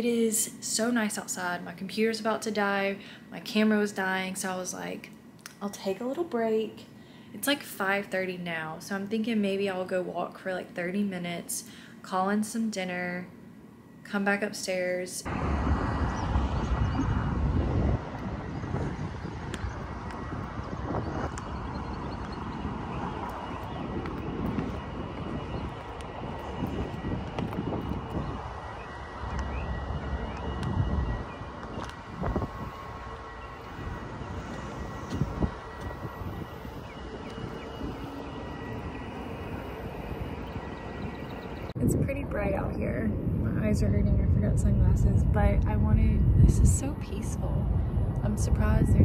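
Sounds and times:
low uneven rumble: 15.3 - 49.0
wind buffeting microphone: 15.3 - 49.0.

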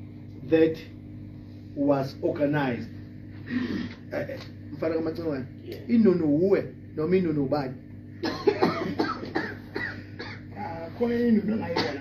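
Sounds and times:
cough: 8.2 - 10.5, 11.6 - 12.0.

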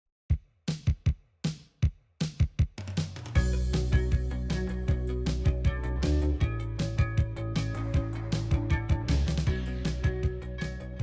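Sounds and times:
kick and snare drum beat: 0.3 - 11.0.

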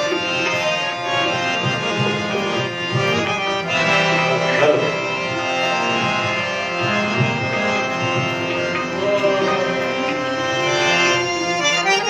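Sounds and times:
harmonium tones: 0.0 - 12.0
hand drum beats: 1.2 - 3.4, 6.8 - 10.2.

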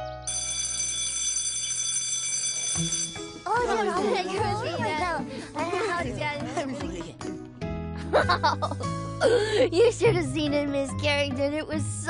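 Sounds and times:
electric school bell ringing: 0.3 - 3.8.

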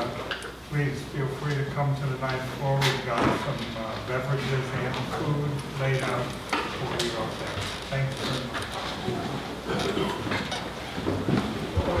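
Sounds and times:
bumps of people moving: 6.8 - 12.0.

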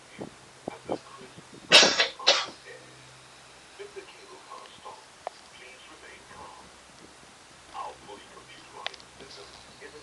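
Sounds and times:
quiet talking voices: 0.0 - 10.0.

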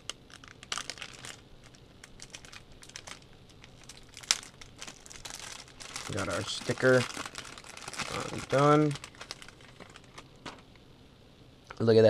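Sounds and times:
anti-static bag crinkling: 0.0 - 10.8.

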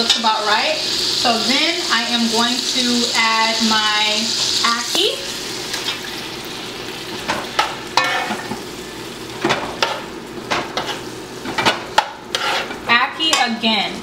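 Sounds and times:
food sizzling: 0.0 - 14.0
metal spoon scraping pot: 12.3 - 12.8.

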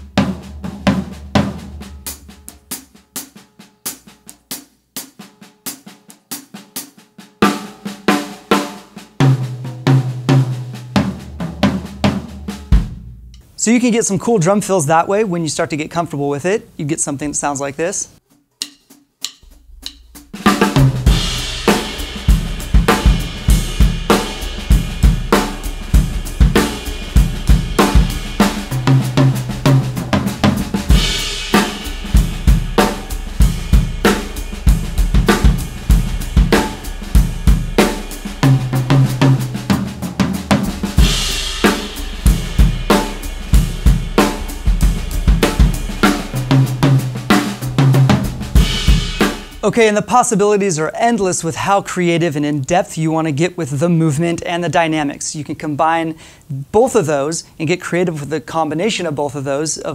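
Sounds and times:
bass drum: 0.0 - 2.7, 9.2 - 13.4, 19.2 - 49.9
drum fills on snare and toms: 0.0 - 13.4, 18.6 - 49.9
cymbal crashes: 19.3 - 49.7.

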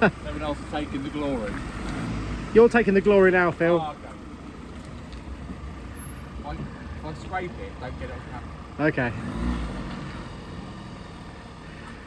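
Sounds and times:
van engine running at low revs: 0.0 - 12.0.

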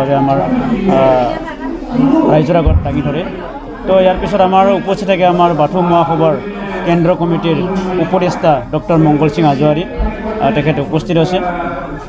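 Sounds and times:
man talking: 2.0 - 11.5.

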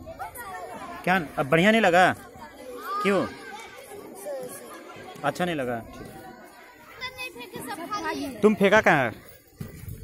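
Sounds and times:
child talking: 0.0 - 1.0, 2.2 - 5.2, 6.5 - 8.4
faint children's chatter: 0.0 - 10.0.

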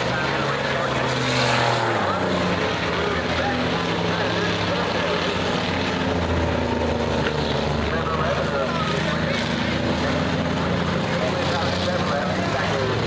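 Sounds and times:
crowd voices: 0.0 - 13.0
racing car engines droning: 0.0 - 13.0.

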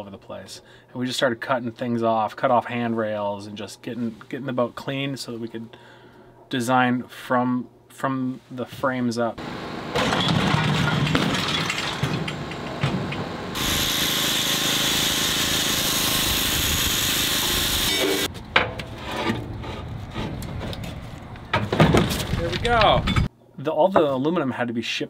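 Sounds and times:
low rumbling work noise: 9.4 - 23.3
power tool cutting metal: 13.2 - 18.3.

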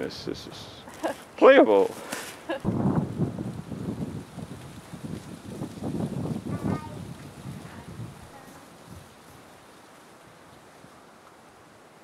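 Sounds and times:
wind buffeting microphone: 1.4 - 9.7.

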